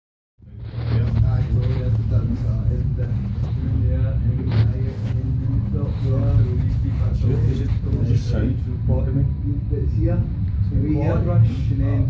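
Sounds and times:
loud steady low rumble: 0.4 - 12.0
voices talking: 0.5 - 12.0.

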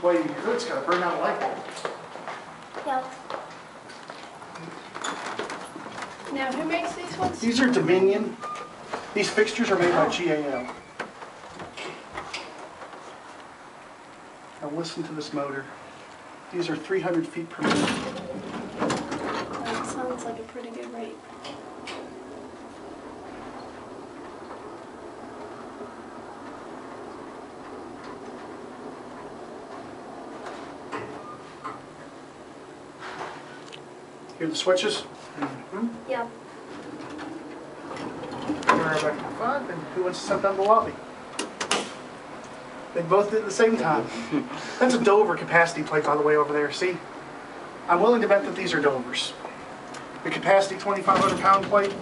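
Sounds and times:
elevator running: 3.6 - 35.2, 36.0 - 52.0
elevator doors sliding open: 8.4 - 13.6, 17.6 - 34.0, 36.4 - 42.9, 49.6 - 52.0.

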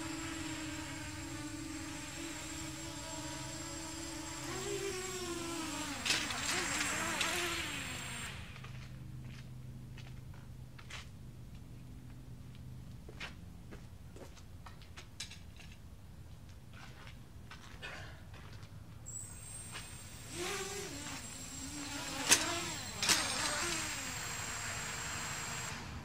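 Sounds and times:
drone motors whining: 0.0 - 9.0, 19.1 - 26.0.

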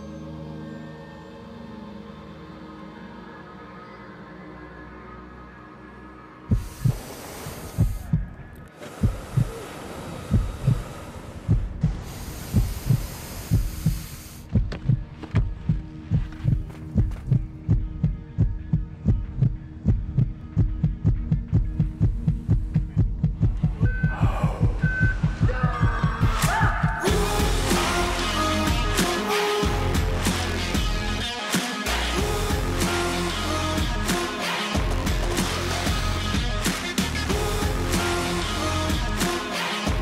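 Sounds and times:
rushing swells: 6.4 - 14.2
deep heartbeat-like thumping: 6.5 - 7.1, 7.7 - 9.6, 10.2 - 27.8.

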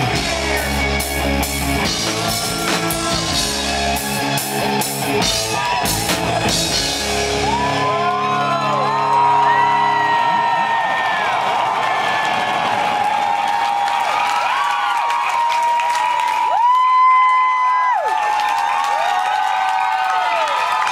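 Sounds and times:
crowd cheering and screaming: 0.0 - 20.9
long scream: 7.3 - 20.9
clapping: 10.7 - 20.9.

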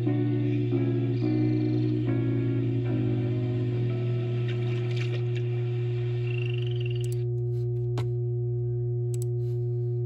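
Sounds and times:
video soundtrack: 0.0 - 5.6
steady low hum: 0.0 - 10.0.

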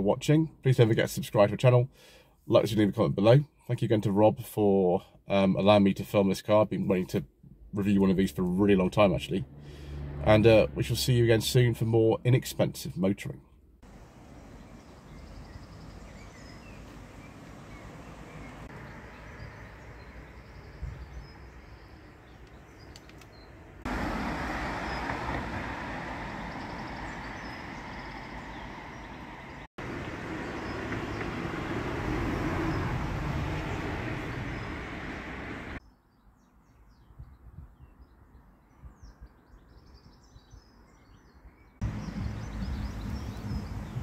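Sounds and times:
street traffic rushing past: 9.2 - 11.2, 13.8 - 35.8, 41.8 - 44.0
birds chirping faintly: 13.8 - 44.0.

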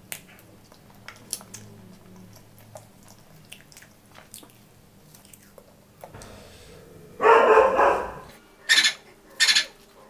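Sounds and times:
close-miked eating: 0.0 - 8.4.

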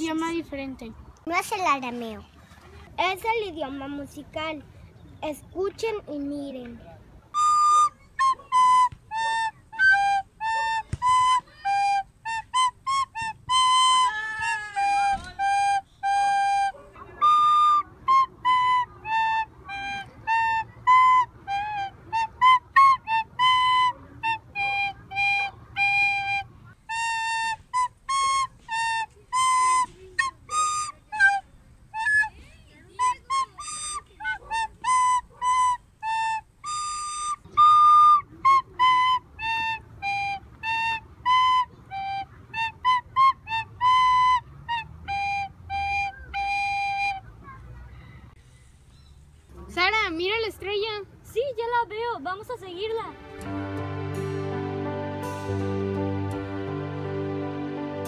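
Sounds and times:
recorder melody: 7.4 - 47.3, 52.8 - 58.0.

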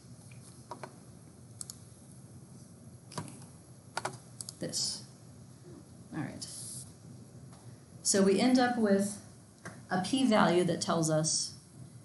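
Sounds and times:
low room hiss: 0.0 - 12.0
computer key clicks: 1.6 - 1.8, 4.0 - 4.6.

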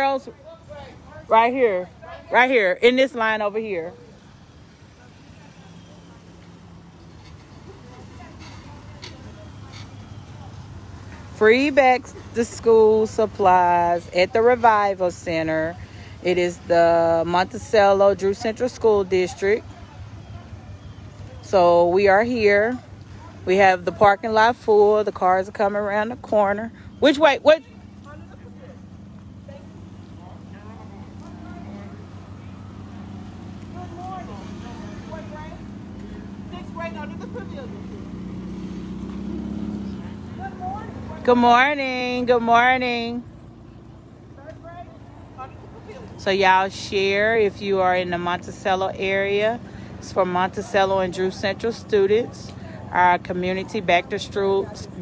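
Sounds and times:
faint voices: 0.0 - 55.0
car engine rumbling past: 3.9 - 55.0.

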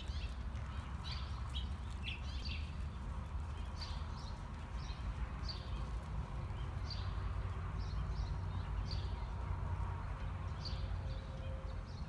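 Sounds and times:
small birds chirping: 0.0 - 9.4
horse hoofbeats on soft dirt: 0.0 - 10.6.

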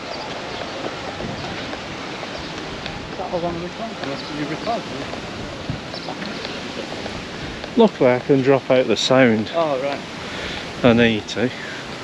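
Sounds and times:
faint voices: 0.0 - 12.0
wind on microphone: 0.0 - 12.0
man speaking: 3.2 - 5.1, 7.7 - 11.9.

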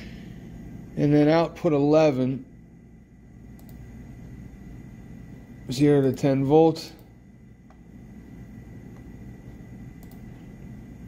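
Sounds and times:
low hum: 0.0 - 11.0
faint clicks: 10.0 - 10.3.

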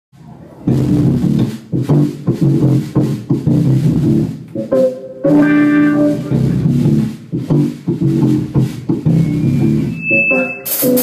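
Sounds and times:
drums: 0.1 - 11.0
electric bass playing: 0.2 - 11.0.

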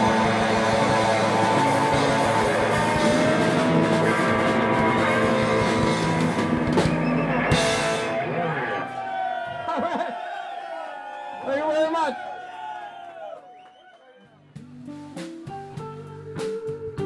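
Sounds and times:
live rock band: 0.0 - 9.2, 14.4 - 17.0
crowd shouting: 0.0 - 14.2
crowd cheering and whooping: 0.0 - 14.4.

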